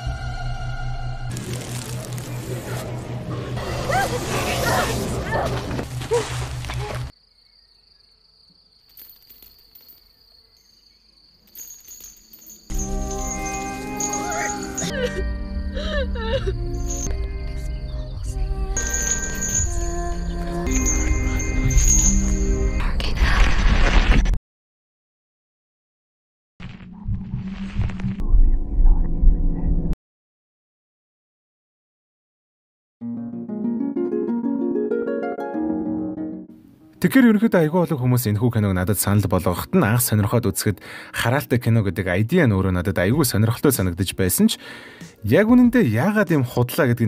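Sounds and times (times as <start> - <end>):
low throbbing drone: 0.0 - 6.8
crickets trilling: 5.9 - 22.5
pulsing rumble: 26.8 - 30.0.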